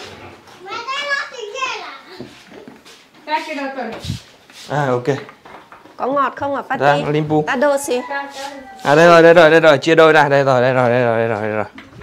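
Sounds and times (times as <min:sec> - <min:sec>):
young child's voice: 0:00.6 - 0:02.4.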